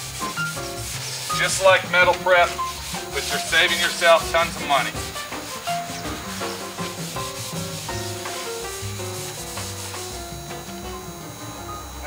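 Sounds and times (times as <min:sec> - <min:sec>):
background music with held notes: 0:00.0 - 0:12.0
scouring pad scrubbing sheet metal: 0:00.0 - 0:12.0.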